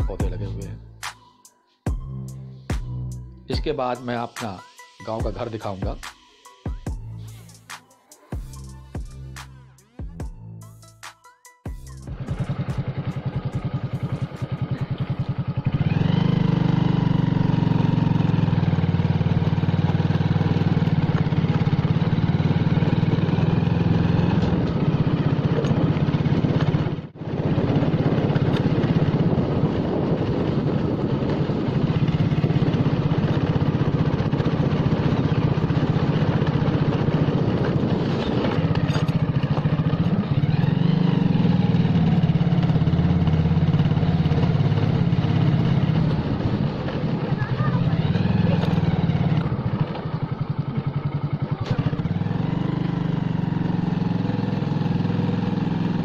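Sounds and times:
motorcycle engine running: 0:00.0 - 0:01.2, 0:06.8 - 0:10.6, 0:11.7 - 0:56.0.

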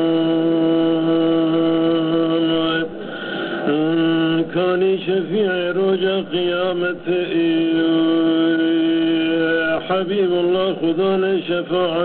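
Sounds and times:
man singing long note: 0:00.0 - 0:03.0, 0:03.7 - 0:12.0.

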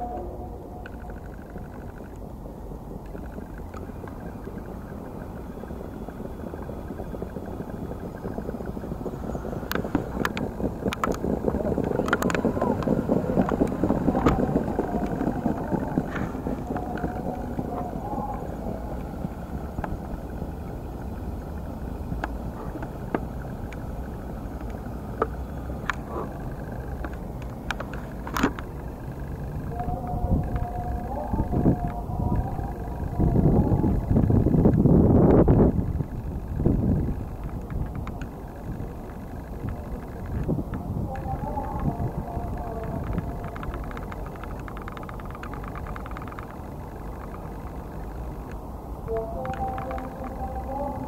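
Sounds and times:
faint voices: 0:00.0 - 0:34.7, 0:35.4 - 0:51.0
wind rumbling on microphone: 0:00.0 - 0:51.0.

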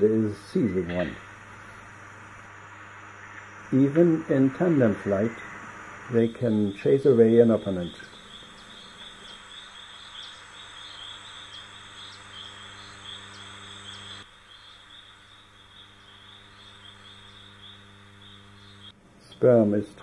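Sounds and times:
insect trill: 0:00.0 - 0:20.0
low steady hum: 0:00.0 - 0:20.0.

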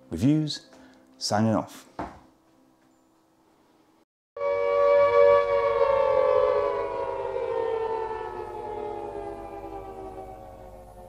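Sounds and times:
tone sliding down in pitch: 0:04.4 - 0:11.0.

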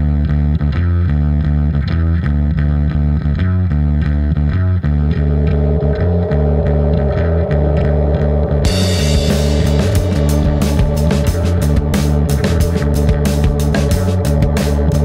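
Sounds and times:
distorted bass guitar riff: 0:00.0 - 0:15.0
buzzing mid-range layer: 0:08.7 - 0:14.7.

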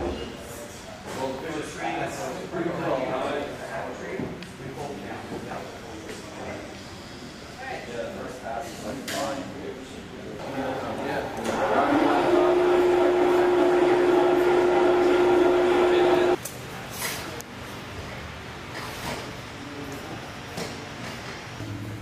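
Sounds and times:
electric hoist motor running: 0:11.3 - 0:16.4.

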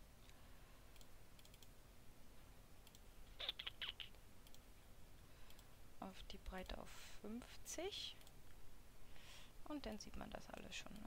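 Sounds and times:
computer mouse clicks: 0:00.2 - 0:01.7, 0:02.8 - 0:04.7, 0:05.4 - 0:05.7, 0:10.5 - 0:11.0.

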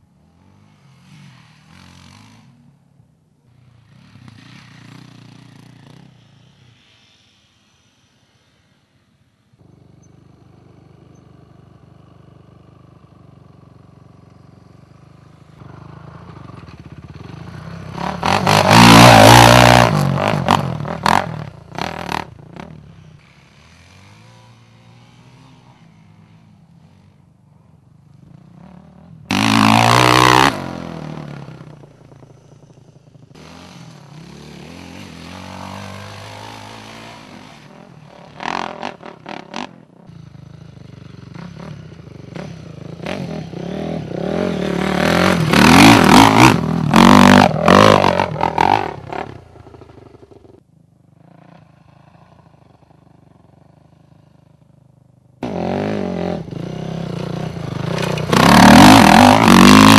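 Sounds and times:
dirt bike engines revving: 0:09.6 - 0:50.6, 0:55.4 - 0:59.9.

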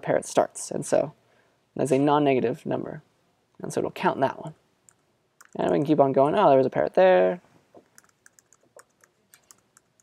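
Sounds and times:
keyboard key clicks: 0:07.8 - 0:10.0.

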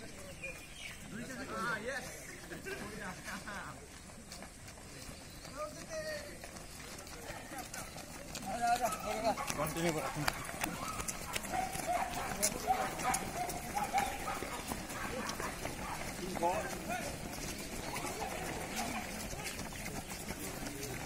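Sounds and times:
footsteps of people jogging on pavement: 0:00.0 - 0:21.0
indistinct voices: 0:06.7 - 0:21.0.

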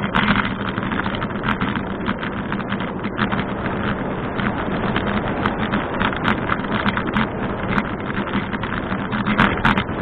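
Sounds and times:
bicycle rattling clatter: 0:00.0 - 0:10.0
bicycle riding hum: 0:00.0 - 0:10.0.

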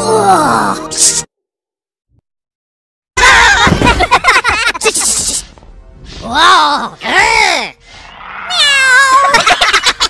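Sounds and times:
high-pitched cartoon vocalizations: 0:06.2 - 0:09.4.

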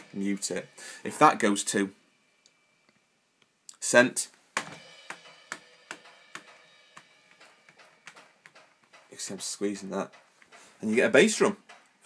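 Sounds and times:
hand tapping electronic cymbal pad: 0:00.0 - 0:03.0, 0:04.6 - 0:12.0.

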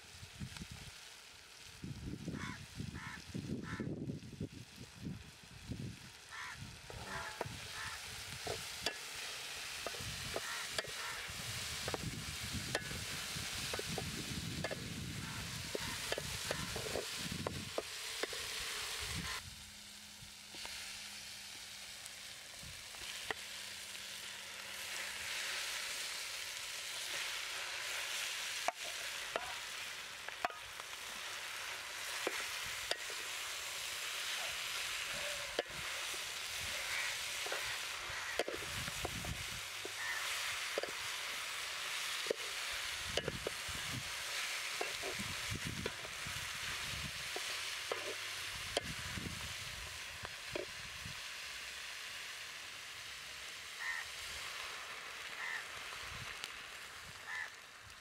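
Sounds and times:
food sizzling in a pot: 0:00.0 - 0:58.0.

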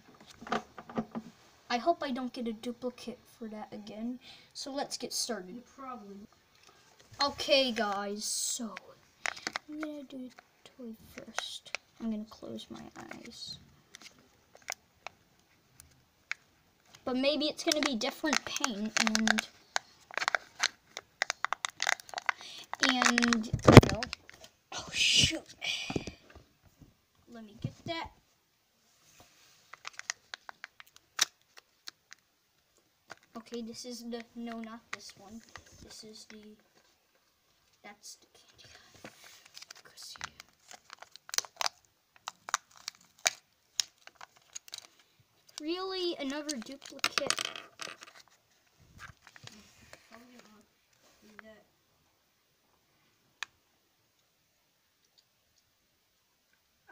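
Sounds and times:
faint clicks of foil and plastic: 0:06.5 - 0:10.5, 0:11.1 - 0:24.6, 0:29.2 - 0:51.6
plastic and paper crackles: 0:06.6 - 0:24.6, 0:29.3 - 0:32.2, 0:33.1 - 0:51.5.

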